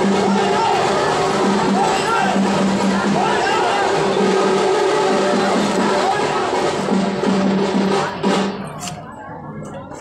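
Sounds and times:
drums beaten in busy rhythm: 0.0 - 10.0.

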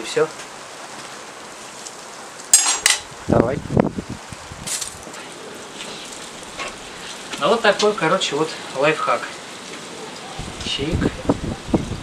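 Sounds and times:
faint steady hiss: 0.0 - 12.0
metal skewers clattering: 2.5 - 3.0.

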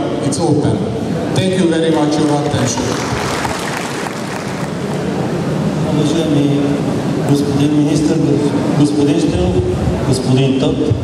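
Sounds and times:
audience applauding: 1.9 - 5.4.

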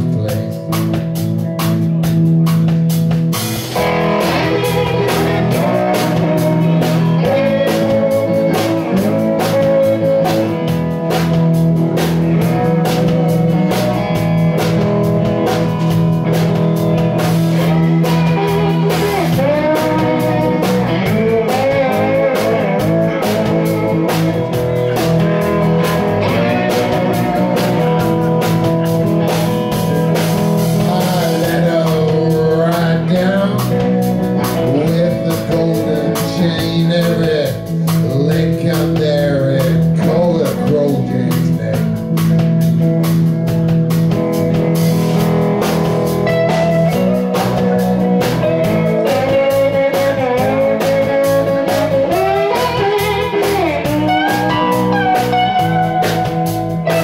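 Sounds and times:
drum kit steady beat: 0.0 - 57.0
electric bass: 0.0 - 57.0
electric guitar lead with bent notes: 0.0 - 57.0
second electric guitar: 0.0 - 57.0.

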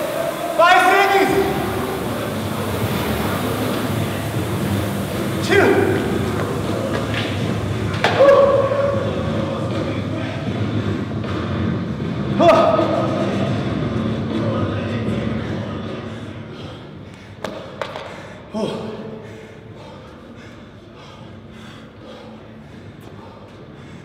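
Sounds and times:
rowing machine fan whirring: 0.0 - 24.0
man breathing heavily: 15.9 - 24.0.

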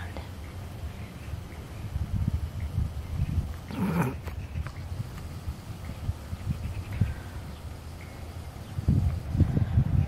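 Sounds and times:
wind buffeting microphone: 0.6 - 10.0.

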